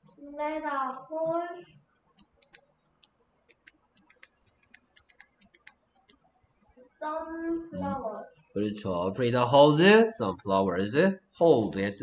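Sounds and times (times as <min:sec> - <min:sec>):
typing on a computer keyboard: 0:02.0 - 0:06.2.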